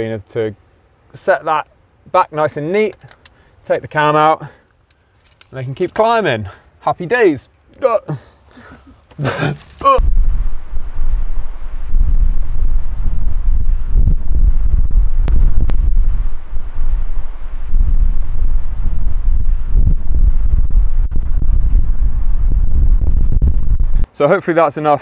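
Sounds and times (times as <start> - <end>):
wind buffeting microphone: 10.0 - 24.1.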